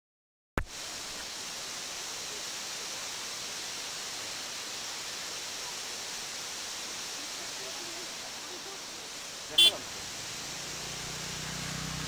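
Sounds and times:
waterfalls and stream rushing: 0.6 - 12.0.

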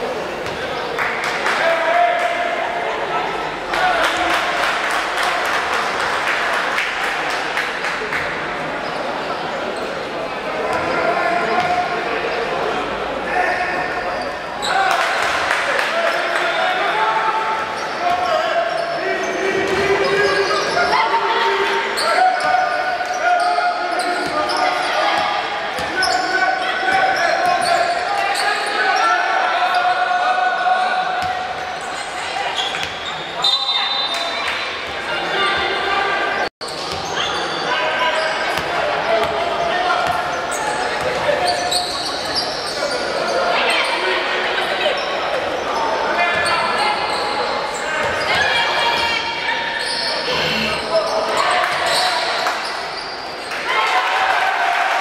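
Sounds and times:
people calling out and chattering: 0.0 - 55.0.

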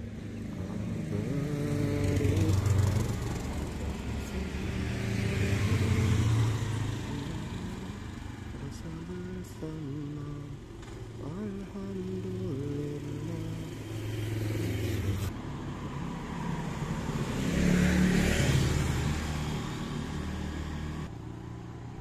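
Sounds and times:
motorbike engines running: 0.0 - 21.9
scooter passing by: 0.0 - 22.0.

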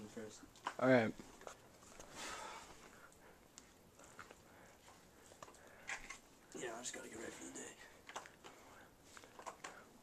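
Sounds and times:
person breathing from effort: 2.0 - 3.4.

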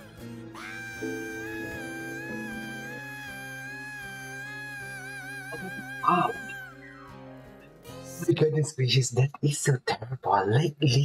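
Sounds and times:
acoustic band accompaniment: 0.0 - 4.6
man singing long high note: 0.0 - 6.8.

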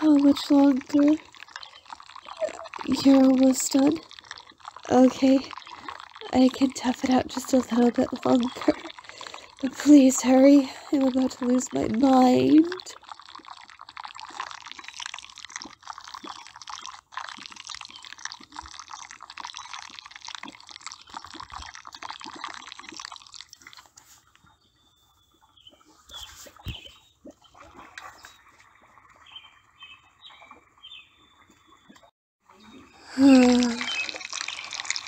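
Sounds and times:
wet mud squishing: 0.0 - 24.2.

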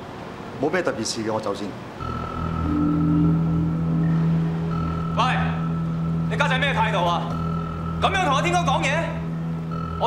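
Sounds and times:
low synth drone: 2.0 - 10.0.

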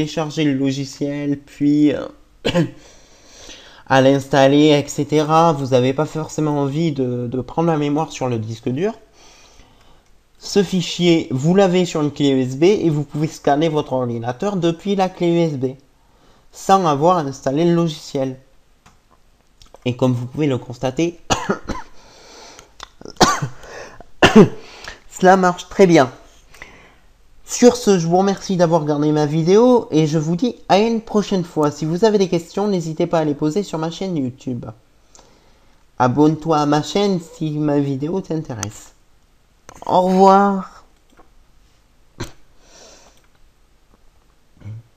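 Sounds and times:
man coughing: 2.4 - 2.8, 21.3 - 22.0, 23.0 - 24.7.

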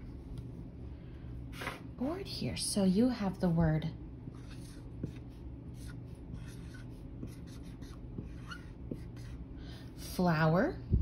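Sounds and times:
marker writing on a whiteboard: 4.3 - 9.4.

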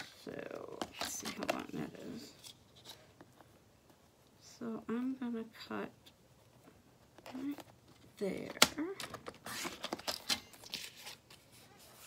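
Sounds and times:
paper rustling: 9.2 - 12.0.

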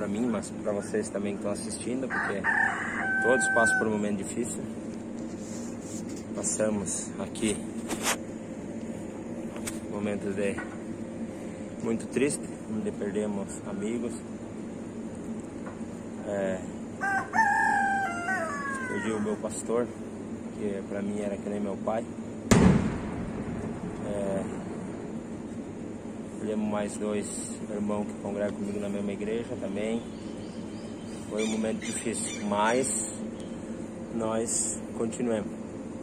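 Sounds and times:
steady low hum: 0.0 - 36.0
sharp knock with ringing tail: 22.5 - 23.9.

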